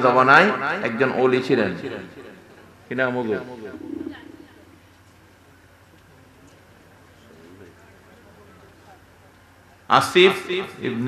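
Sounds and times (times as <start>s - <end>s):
steady low hum: 2.5s - 5.9s.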